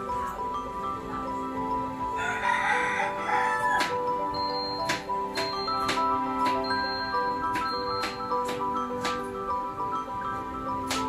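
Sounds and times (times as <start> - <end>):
background music with held notes: 0.0 - 11.0
light ticking beat: 3.8 - 11.0.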